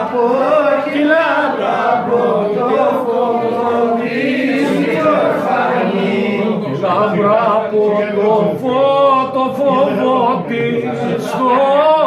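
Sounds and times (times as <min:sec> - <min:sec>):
men singing long held notes: 0:00.0 - 0:12.0.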